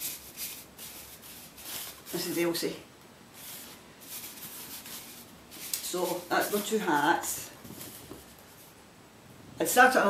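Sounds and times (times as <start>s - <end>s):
knitted hat rubbing and rustling: 0.0s - 8.8s.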